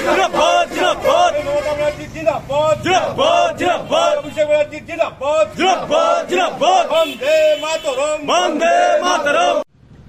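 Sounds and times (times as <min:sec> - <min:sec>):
men chanting in unison: 0:00.0 - 0:01.6, 0:02.5 - 0:09.7.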